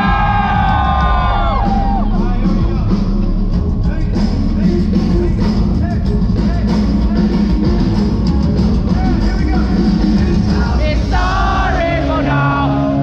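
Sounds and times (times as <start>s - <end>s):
live rock band music: 0.0s - 13.0s.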